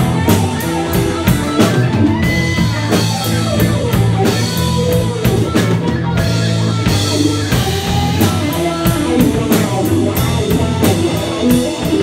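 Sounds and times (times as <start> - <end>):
bass guitar: 0.0 - 12.0
drum kit beat: 0.0 - 12.0
electric guitars: 0.0 - 12.0.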